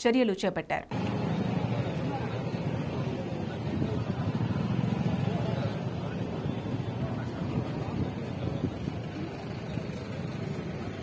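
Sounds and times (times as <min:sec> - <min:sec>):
people's voices: 0:00.9 - 0:11.0
outboard motor rumble: 0:01.0 - 0:11.0.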